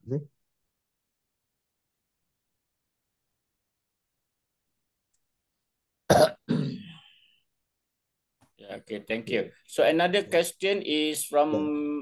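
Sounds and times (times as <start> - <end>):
person clearing throat: 6.1 - 7.0.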